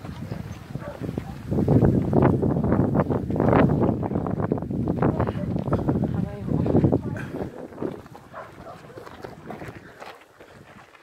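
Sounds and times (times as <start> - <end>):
footsteps crunching on gravel: 0.0 - 11.0
people talking: 5.0 - 8.1.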